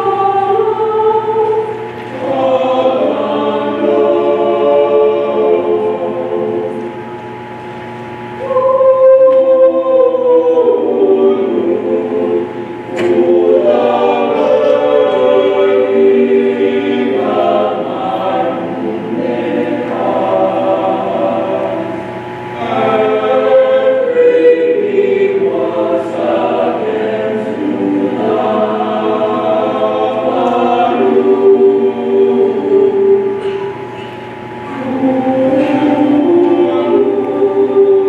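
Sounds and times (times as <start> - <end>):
mixed choir singing: 0.0 - 38.0.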